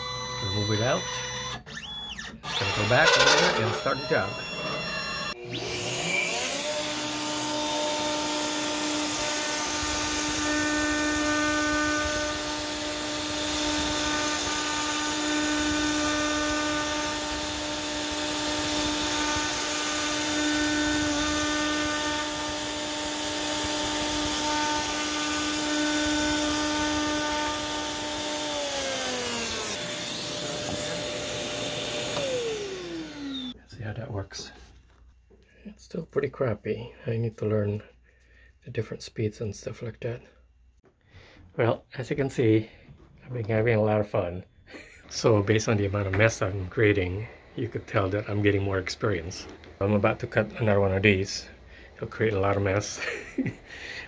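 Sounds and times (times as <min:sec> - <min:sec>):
motor tone sliding down: 0:00.0 - 0:06.8, 0:27.4 - 0:33.6
router spindle whine: 0:00.0 - 0:33.6, 0:44.7 - 0:53.3
dust extraction vacuum: 0:02.5 - 0:33.6, 0:44.7 - 0:54.0.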